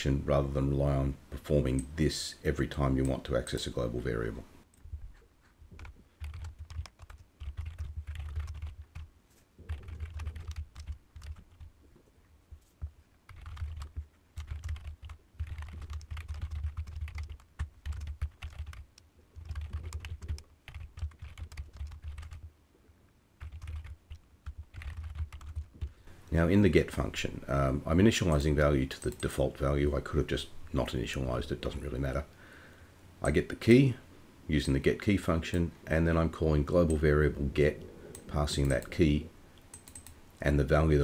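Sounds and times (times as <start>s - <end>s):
typing on keyboard: 5.7s - 11.7s, 13.3s - 22.5s, 23.4s - 25.9s, 39.7s - 40.2s.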